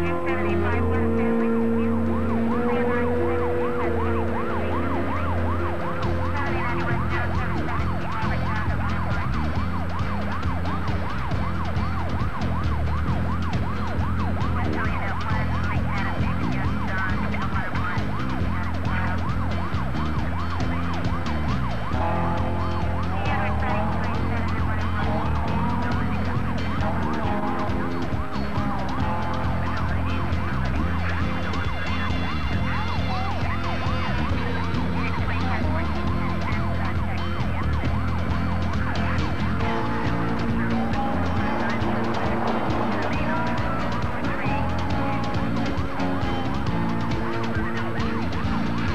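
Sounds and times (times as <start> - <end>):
emergency siren: 0.0 - 48.9.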